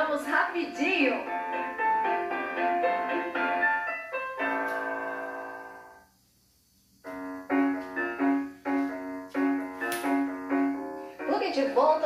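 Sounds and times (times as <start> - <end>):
piano music: 0.0 - 6.1, 7.0 - 12.0.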